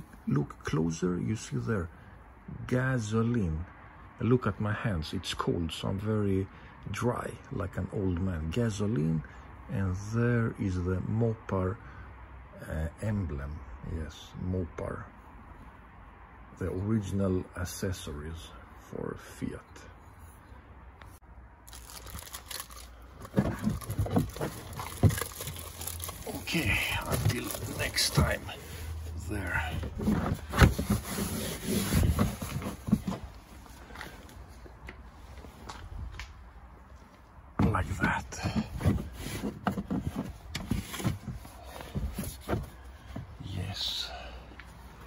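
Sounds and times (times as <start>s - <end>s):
rustling: 20.0s - 36.2s, 36.8s - 44.0s
plastic bag crinkling: 21.6s - 28.4s.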